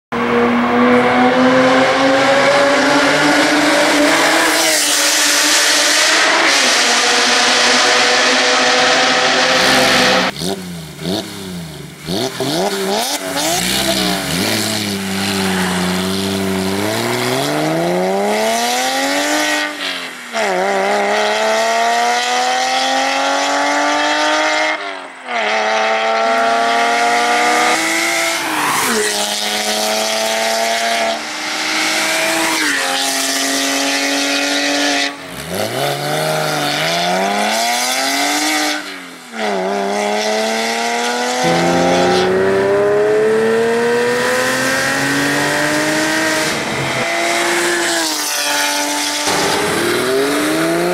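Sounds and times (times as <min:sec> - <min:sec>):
sports car engine revving: 0:00.2 - 0:19.7, 0:39.6 - 0:50.9.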